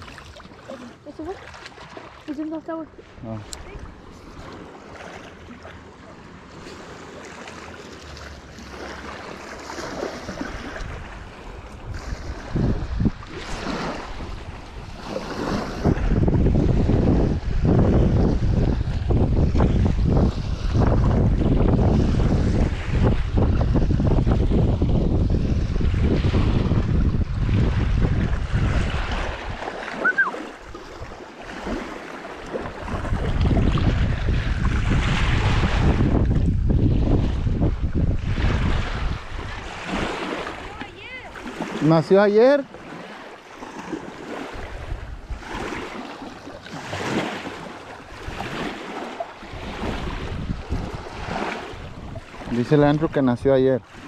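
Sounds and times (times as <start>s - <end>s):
small waves lapping at shore: 0.0s - 54.0s
gusty wind buffeting microphone: 9.9s - 31.8s, 32.6s - 41.7s, 43.8s - 46.0s, 48.0s - 53.5s.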